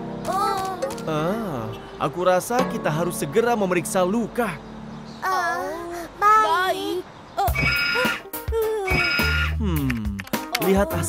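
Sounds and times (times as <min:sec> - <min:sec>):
cartoon music with electronic tones: 0:07.5 - 0:11.0.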